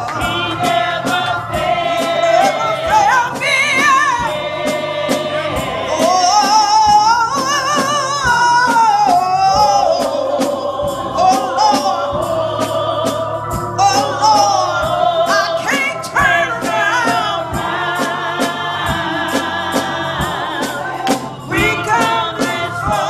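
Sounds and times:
steady beat of sharp hits: 0.0s - 23.0s
women singing gospel song: 0.0s - 23.0s.

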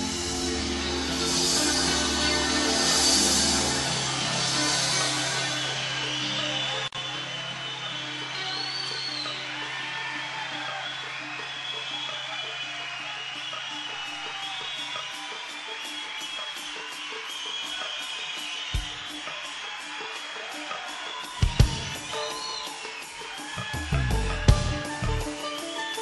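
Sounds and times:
soft guitar: 23.6s - 26.0s.

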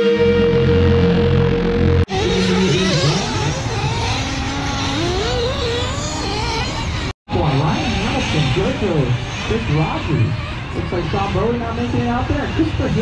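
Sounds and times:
rc car engines revving: 2.1s - 13.0s.

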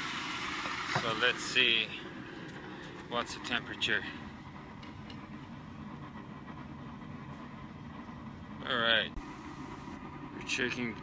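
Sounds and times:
low rumble of running forge: 0.0s - 11.0s.

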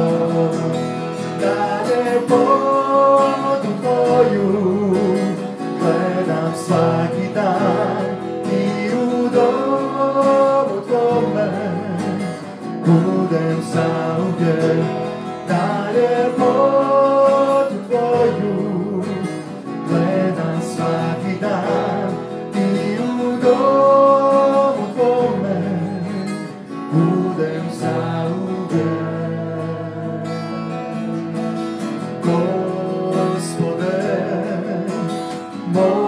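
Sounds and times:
worship band playing: 0.0s - 30.2s
strummed acoustic guitar: 0.0s - 36.0s.

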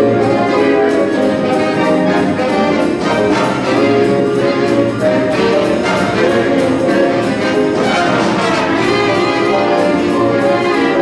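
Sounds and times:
big band swing music: 0.0s - 11.0s
drum kit cymbal beat: 0.0s - 11.0s.

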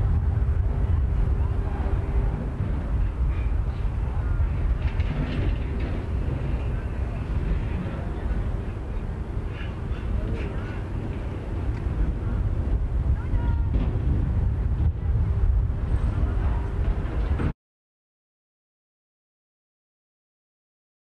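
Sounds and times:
wind rumbling on microphone: 0.0s - 17.6s.

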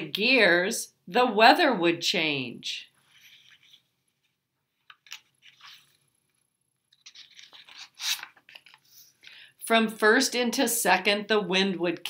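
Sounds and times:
book pages rustling: 3.0s - 9.2s.

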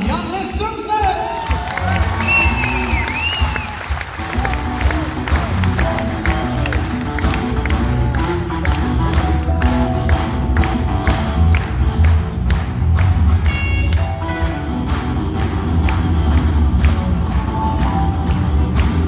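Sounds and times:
drum beat: 0.0s - 19.0s
keyboards: 0.0s - 19.0s
bass guitar: 1.7s - 19.0s
electric guitar: 1.8s - 19.0s.

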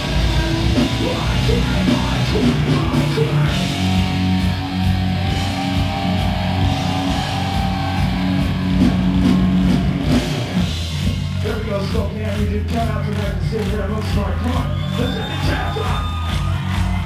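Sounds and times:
electric guitars: 0.0s - 11.4s
bass guitar: 0.0s - 17.0s
drum kit: 0.0s - 17.0s.

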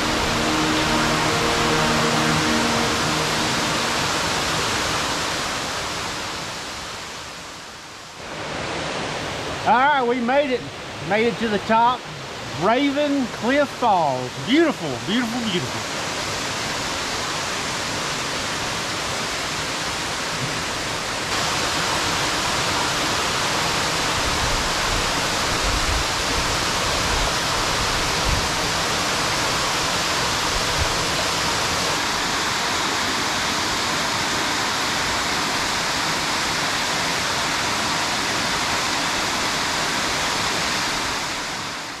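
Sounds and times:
waterfall rushing: 0.0s - 42.0s.

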